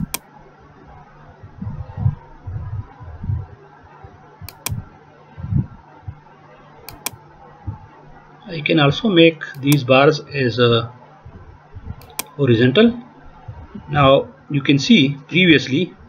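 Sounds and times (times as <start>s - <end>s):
computer mouse clicks: 0.0s - 0.3s, 4.4s - 4.8s, 6.9s - 7.2s, 9.5s - 9.9s, 12.0s - 12.4s
faint steady hum: 0.0s - 16.0s
low dull bumps: 0.9s - 6.3s.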